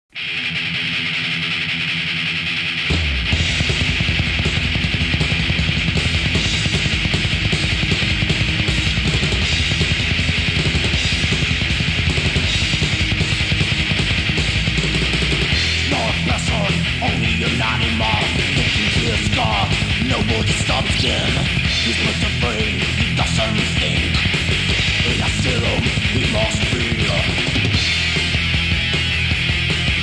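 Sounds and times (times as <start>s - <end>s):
distorted electric guitar: 0.1s - 30.0s
metal band fast riff: 0.1s - 30.0s.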